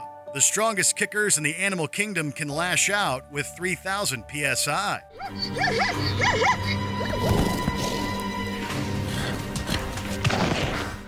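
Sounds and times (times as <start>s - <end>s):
background music: 0.0s - 11.0s
zebras squealing: 5.2s - 7.4s.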